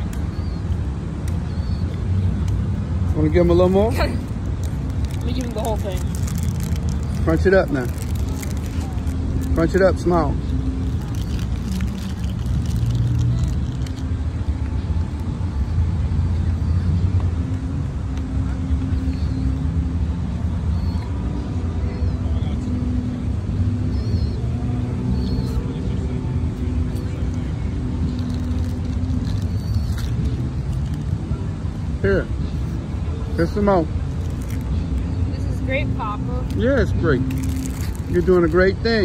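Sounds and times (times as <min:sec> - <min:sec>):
engine hum: 0:00.0 - 0:39.0
low rumble of city traffic: 0:00.0 - 0:39.0.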